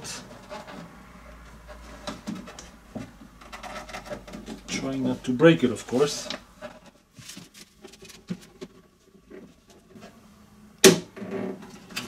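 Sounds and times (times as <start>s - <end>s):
rubber seal scraping: 1.6s - 4.9s.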